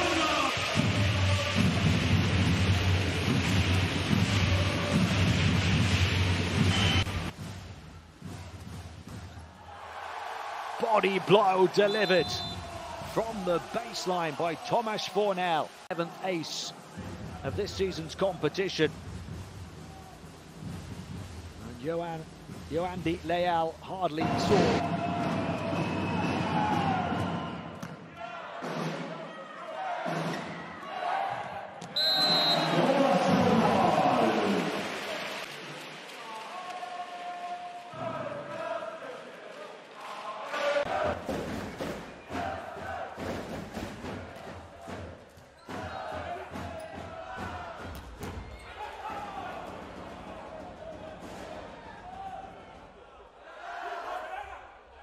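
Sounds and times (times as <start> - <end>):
crowd chanting and cheering: 0.0 - 7.1, 9.4 - 18.9, 23.2 - 55.0
referee's whistle: 6.6 - 7.2, 11.7 - 12.7, 31.9 - 33.0.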